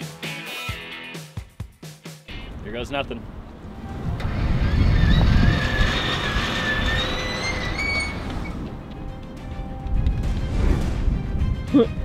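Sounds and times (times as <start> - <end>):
background music: 0.0 - 2.4, 8.2 - 12.0
winch whining: 3.8 - 8.8.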